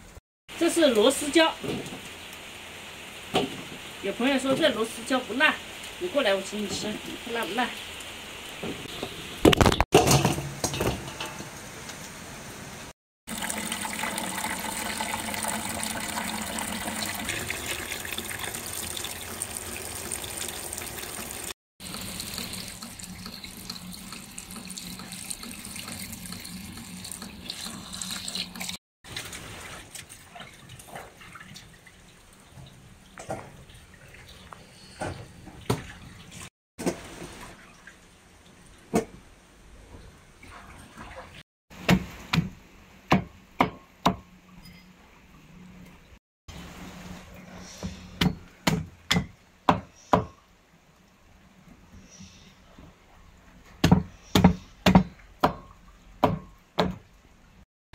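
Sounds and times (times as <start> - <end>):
tap water running into bowl: 13.3 - 28.8.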